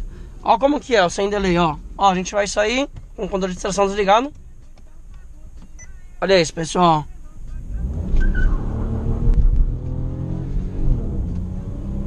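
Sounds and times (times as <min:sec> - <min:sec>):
car engine accelerating: 0:07.4 - 0:12.0.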